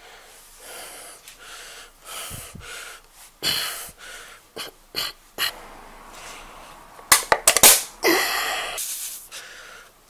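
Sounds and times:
man breathing hard: 0.0 - 4.7, 8.0 - 10.0.

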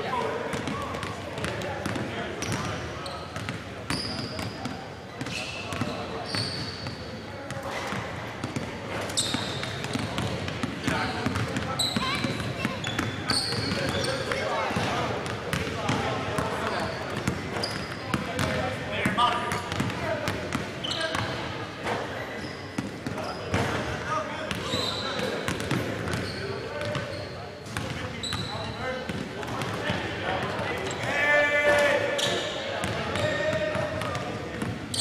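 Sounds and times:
basketballs bouncing on wooden court: 0.5 - 2.8, 3.4 - 7.0, 7.9 - 21.4, 22.8 - 23.8, 24.5 - 31.0, 32.8 - 35.0.

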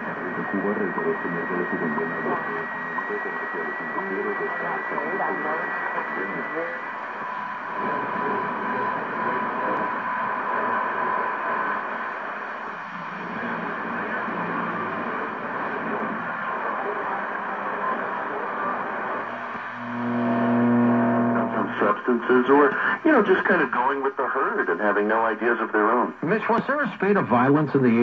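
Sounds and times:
radio receiver hiss and static: 0.0 - 28.0
low droning tone: 12.9 - 21.8.

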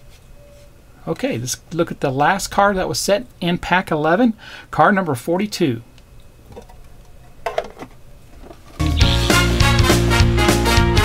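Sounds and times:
upbeat swing music: 8.8 - 11.0.

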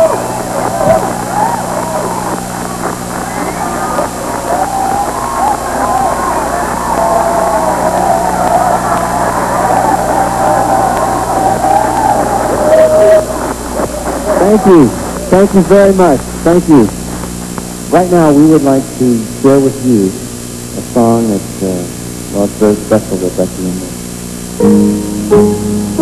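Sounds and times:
voices calling out: 0.0 - 16.1
crowd cheering and clapping: 0.0 - 16.2
low recording hum: 0.0 - 26.0.

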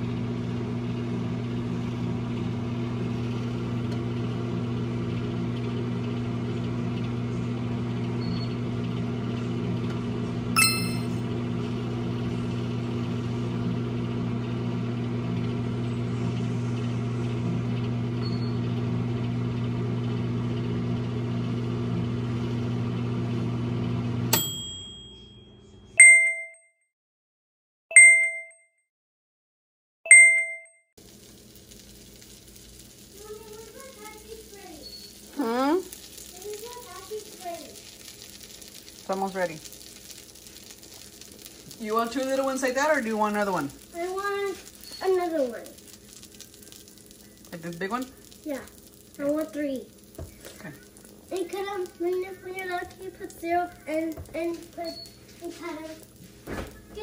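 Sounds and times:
microwave oven humming: 0.0 - 26.0, 31.0 - 57.0
microwave beeps: 6.0 - 11.6, 16.3 - 19.8, 23.0 - 26.6, 27.9 - 28.6, 30.1 - 30.8, 34.7 - 35.8, 44.7 - 45.3, 54.8 - 55.4
short clink: 10.6 - 11.2
microwave click: 24.1 - 25.0.

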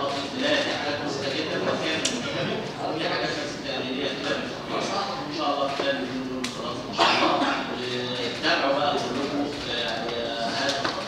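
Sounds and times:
indistinct talking voices: 0.0 - 11.0.

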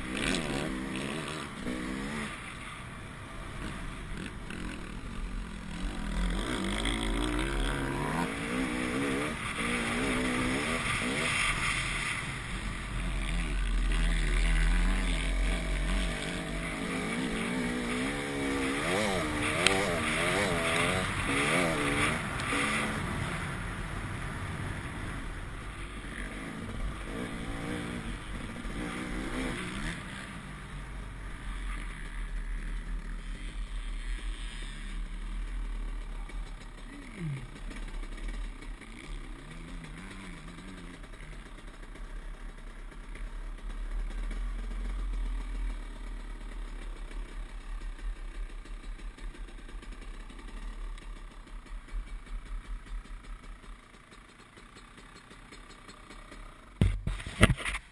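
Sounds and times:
dirt bike engine revving: 0.0 - 41.7
sharp knock: 56.8 - 57.6.

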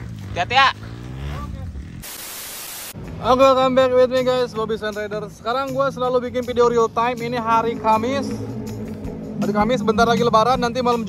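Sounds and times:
static hiss burst: 2.0 - 3.0.

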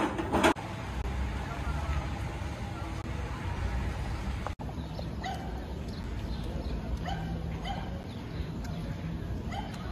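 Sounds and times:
street background noise: 0.0 - 9.9
dog yipping: 5.2 - 5.6, 7.0 - 8.0, 9.5 - 9.9.

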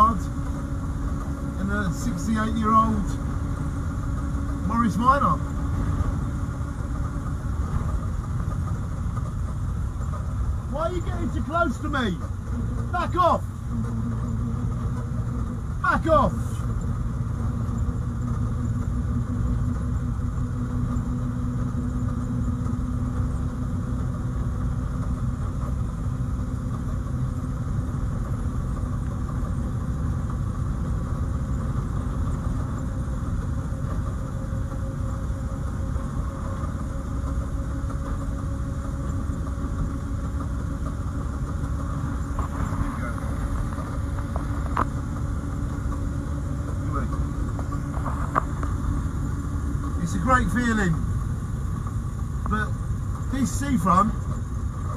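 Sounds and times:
car engine low drone: 0.0 - 54.9.

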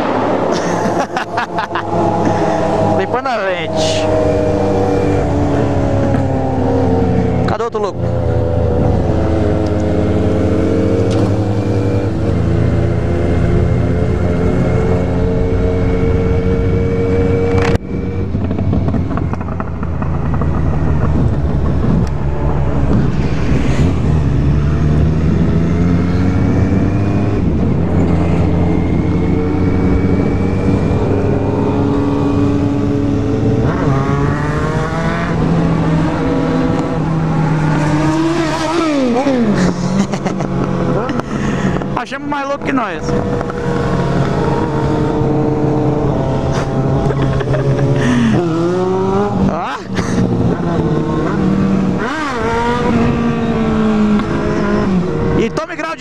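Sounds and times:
wind rush: 0.0 - 55.4
motorcycle engine accelerating: 0.0 - 56.0.

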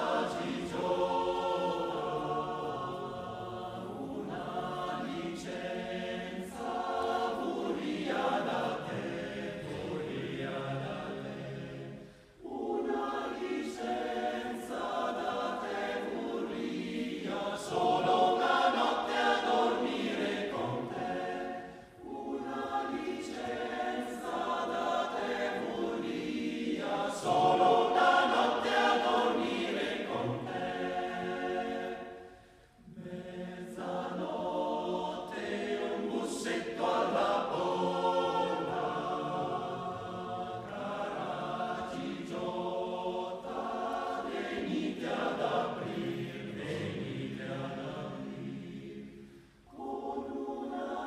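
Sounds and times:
male choir singing: 0.0 - 51.0.

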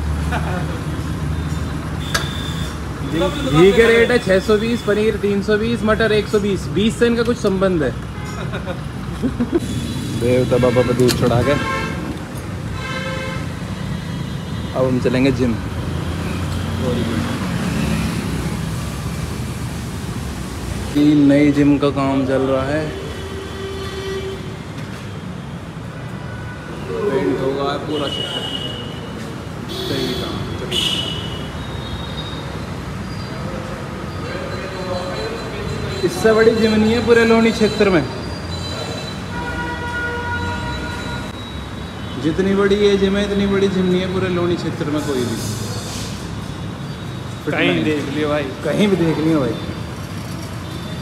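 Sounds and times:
road traffic rumble: 0.0 - 51.0
street noise: 0.0 - 51.0.

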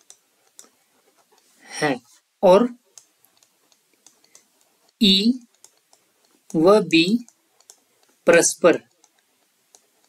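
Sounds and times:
stylus tapping on tablet: 0.0 - 1.5, 2.8 - 8.2, 8.8 - 10.0
person speaking: 0.0 - 9.1.

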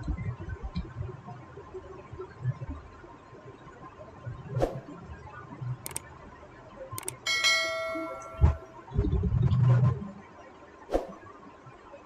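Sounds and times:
mouse clicks: 5.8 - 6.0, 7.0 - 7.2
bell chime: 7.2 - 8.8.

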